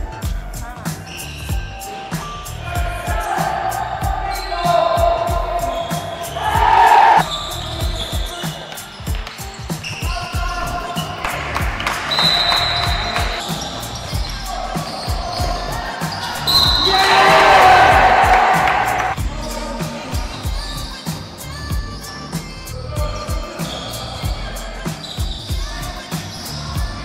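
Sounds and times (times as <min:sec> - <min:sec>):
background music: 0:00.0 - 0:27.0.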